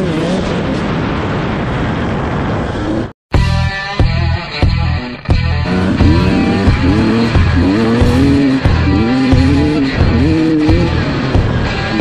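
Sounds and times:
wind noise on microphone: 0.0s - 3.1s
dirt bike engine running: 3.4s - 12.0s.

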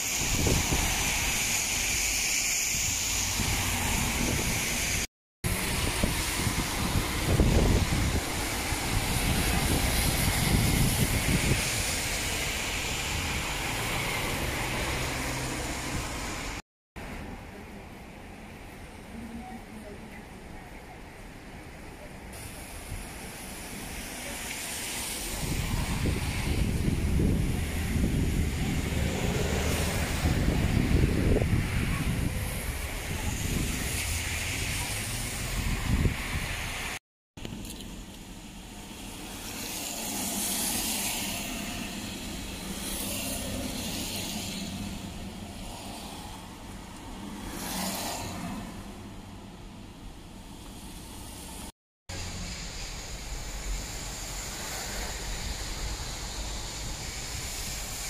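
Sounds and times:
vehicles passing: 0.2s - 17.9s, 23.3s - 58.0s.

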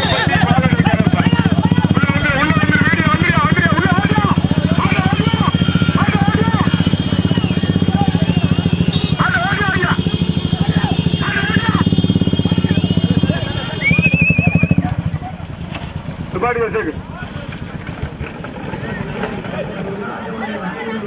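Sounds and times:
people shouting and whooping: 0.0s - 2.6s, 4.0s - 15.4s
motorcycle engine running: 0.0s - 20.2s.

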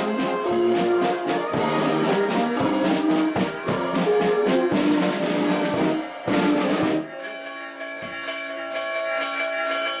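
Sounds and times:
church bells ringing: 3.6s - 10.0s.

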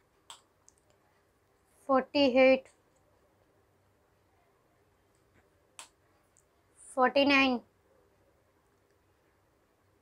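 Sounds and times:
woman speaking: 1.8s - 2.7s, 6.8s - 7.7s.

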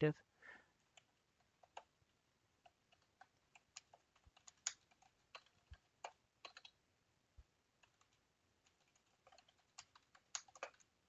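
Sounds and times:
computer keyboard typing: 0.8s - 2.0s, 2.6s - 6.8s, 7.8s - 11.0s.

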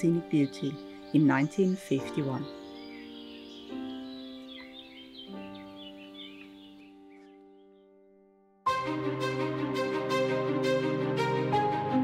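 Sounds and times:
birds chirping: 0.0s - 8.1s
soft background music: 0.0s - 12.0s.

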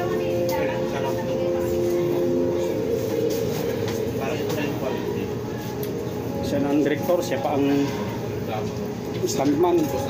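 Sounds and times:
indistinct voices: 0.0s - 9.2s
steady background hum: 0.0s - 10.0s.

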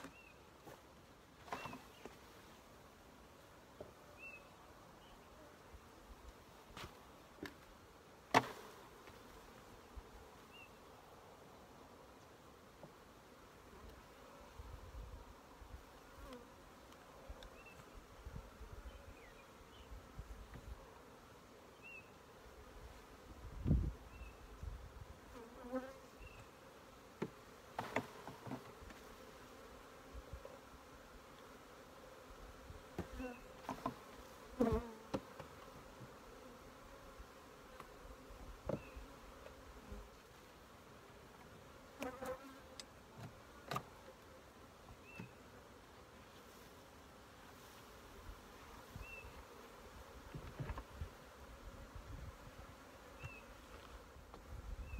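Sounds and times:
honey bees buzzing: 1.4s - 54.9s
wooden knocks of hive frames: 27.2s - 29.0s, 32.9s - 36.2s, 38.6s - 38.9s, 50.2s - 51.0s.

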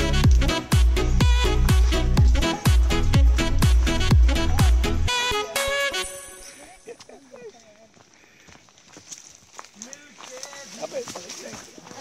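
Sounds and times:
footsteps on dirt trail: 0.0s - 4.3s, 6.4s - 12.0s.

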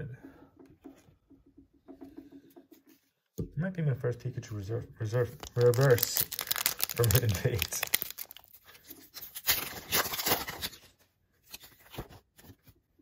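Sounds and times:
foil wrapper tearing and crinkling: 5.3s - 10.9s.

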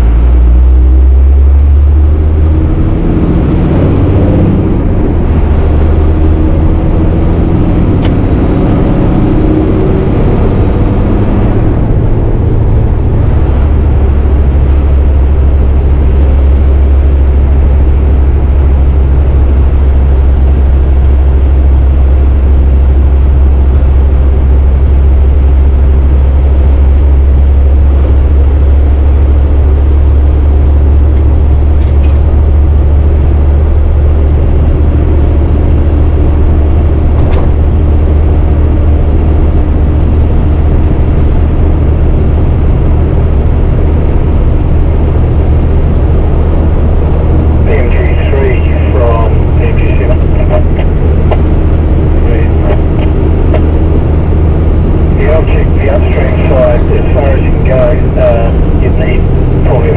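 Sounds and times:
road noise: 0.0s - 59.9s
truck diesel engine droning: 0.0s - 59.9s
indistinct voices: 47.6s - 53.7s, 55.2s - 59.9s.

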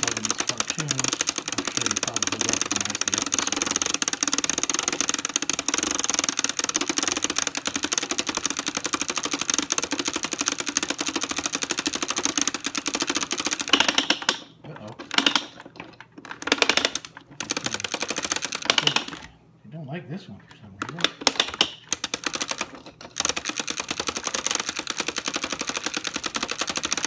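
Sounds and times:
projector crank clicking: 0.0s - 19.3s, 20.9s - 27.0s.

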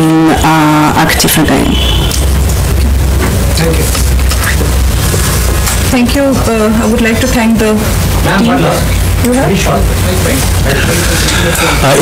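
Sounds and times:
low rumble: 1.5s - 8.2s.

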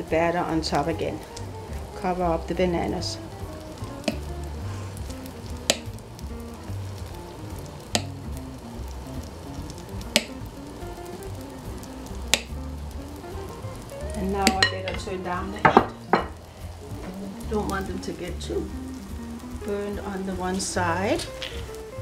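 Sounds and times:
batter sizzling in butter: 0.0s - 22.0s
soft background music: 0.0s - 22.0s.

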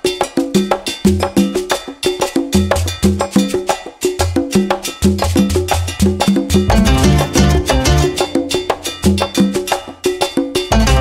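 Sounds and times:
percussive background music: 0.0s - 11.0s.

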